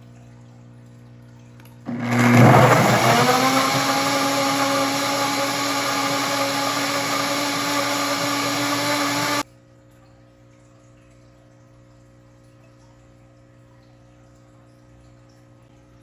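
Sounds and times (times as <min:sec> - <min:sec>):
blender chopping fruit: 0:01.9 - 0:09.4
blender motor whine: 0:01.9 - 0:09.4.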